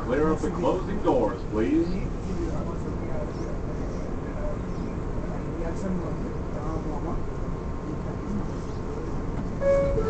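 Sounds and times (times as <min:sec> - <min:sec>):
faint passenger voices: 0:00.0 - 0:10.0
subway car rumble and hum: 0:00.0 - 0:10.0.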